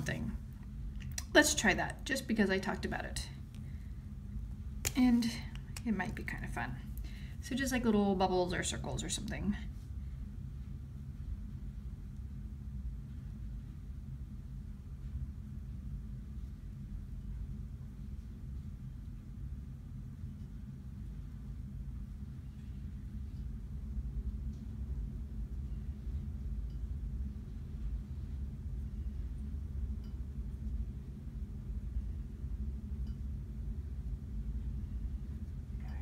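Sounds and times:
low background hum: 0:00.0 - 0:36.0.

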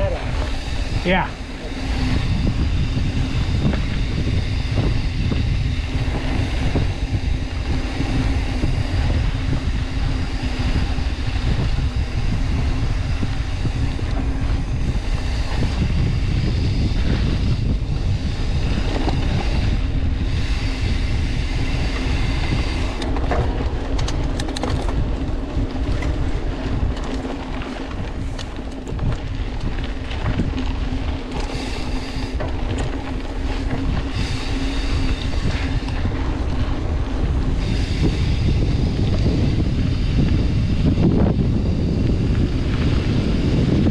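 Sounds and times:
bike clattering over bumps: 0:00.0 - 0:43.9
steady hum: 0:00.0 - 0:43.9
wind buffeting microphone: 0:00.0 - 0:43.9.

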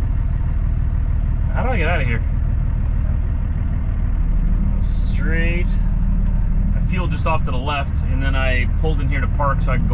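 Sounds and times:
truck engine running: 0:00.0 - 0:09.9.

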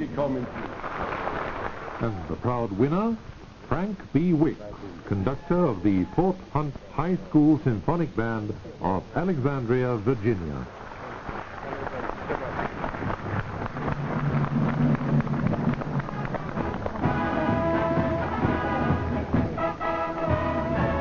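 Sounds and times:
wind band music: 0:15.9 - 0:21.0.

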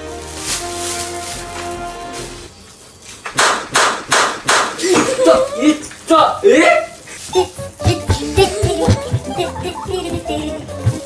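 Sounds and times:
background music with held notes: 0:00.0 - 0:02.5, 0:07.4 - 0:11.0.

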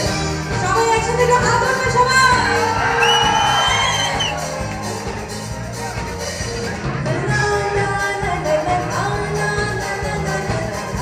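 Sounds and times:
live band music: 0:00.0 - 0:11.0
crowd cheering: 0:01.1 - 0:07.0.

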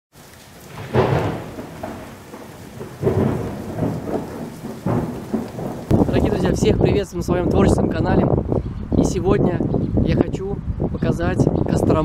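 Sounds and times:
steady rain: 0:00.1 - 0:08.5
thunder rumbling: 0:00.2 - 0:09.2.

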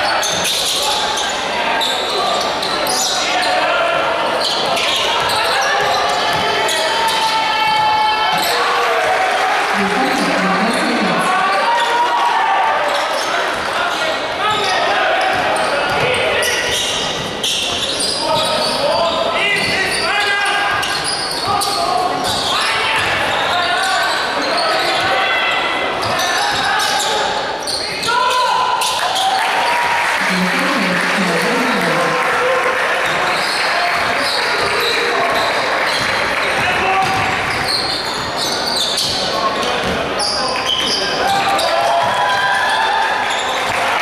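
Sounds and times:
players and crowd shouting: 0:00.0 - 0:16.8, 0:18.0 - 0:33.6
basketball bouncing on court: 0:05.2 - 0:06.6, 0:36.0 - 0:37.8.

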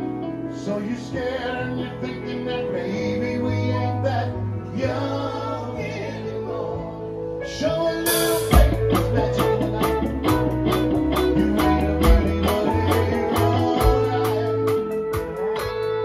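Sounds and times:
keyboard sustained notes: 0:00.0 - 0:16.0
drums playing steady beat: 0:08.1 - 0:16.0
electric guitar sustained notes: 0:08.1 - 0:16.0.

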